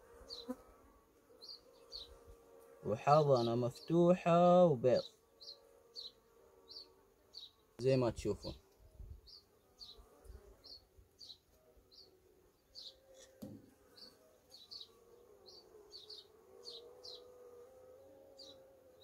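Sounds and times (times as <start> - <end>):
honeybees buzzing: 0.0 - 19.0
small bird chirping: 0.2 - 0.6, 1.4 - 2.2, 5.0 - 7.7, 9.2 - 17.3, 18.3 - 18.6
soft knock: 13.4 - 13.7.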